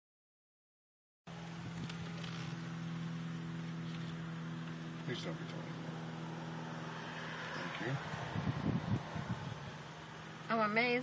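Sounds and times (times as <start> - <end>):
engine and road rumble: 1.3 - 11.0.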